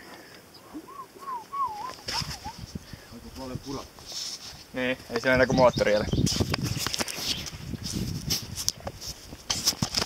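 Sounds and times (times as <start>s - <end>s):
whistled notes: 0.8s - 2.6s.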